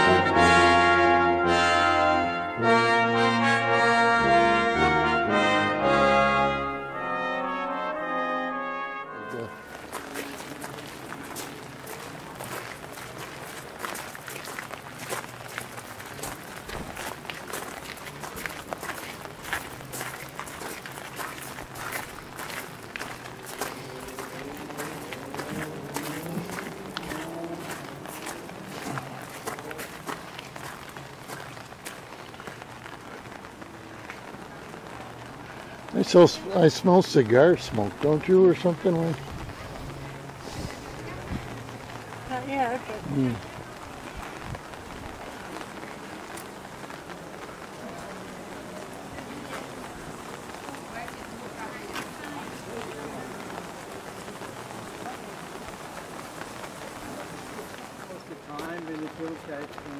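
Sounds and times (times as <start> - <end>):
brass music: 0.0 - 12.0, 22.9 - 30.0
raindrops tapping on umbrellas: 8.6 - 59.9
footsteps on wet stone: 9.5 - 35.4, 36.1 - 59.9
faint voices: 21.3 - 59.9.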